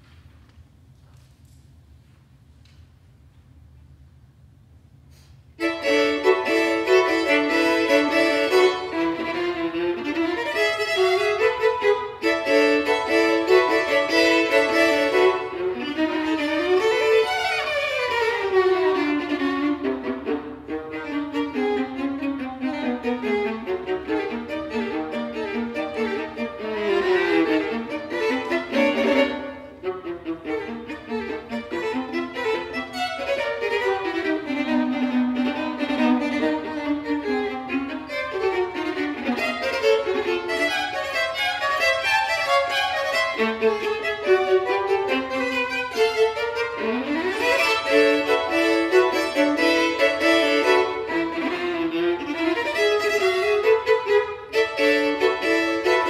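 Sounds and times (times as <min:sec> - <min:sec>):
violin and viola duo: 0:05.1 - 0:56.0.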